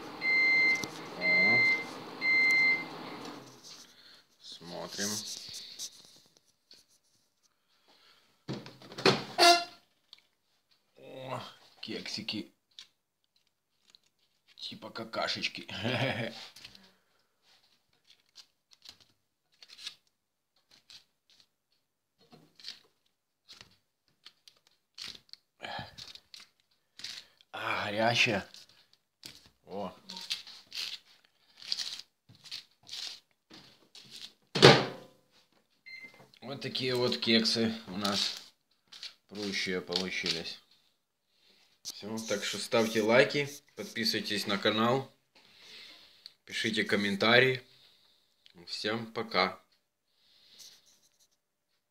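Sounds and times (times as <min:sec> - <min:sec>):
paper liners rustling: 0:03.4 - 0:07.5, 0:12.7 - 0:14.8, 0:16.4 - 0:27.5, 0:28.3 - 0:34.5, 0:36.6 - 0:40.8.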